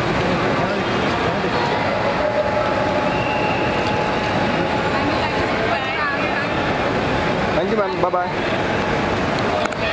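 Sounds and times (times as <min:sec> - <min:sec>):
loud rushing noise: 0:00.0 - 0:09.9.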